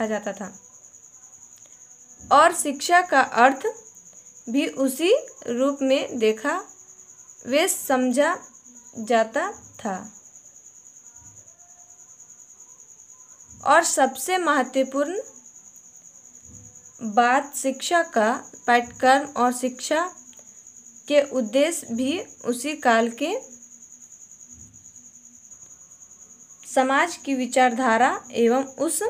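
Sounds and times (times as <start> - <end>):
cricket trilling: 0.0 - 29.0.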